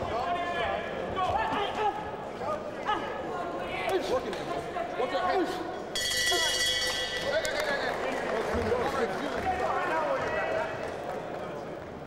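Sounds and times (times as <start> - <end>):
boxing ring bell ringing: 6.0 - 7.6.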